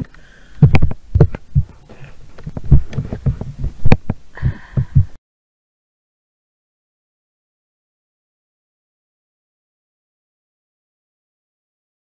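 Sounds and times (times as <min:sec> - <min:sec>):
low thumps and knocks: 0:00.0 - 0:05.2.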